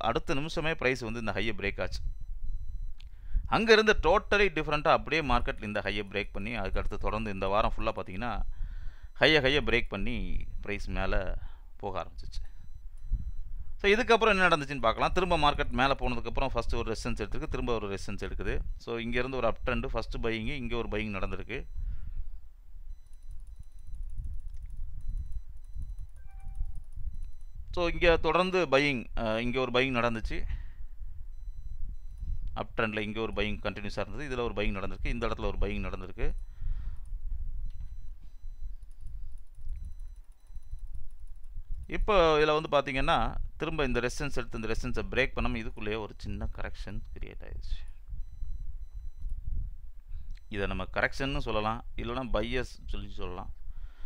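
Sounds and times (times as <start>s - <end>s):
faint high-pitched tones: 0.2s - 37.0s
low background rumble: 14.6s - 28.4s, 29.2s - 42.3s.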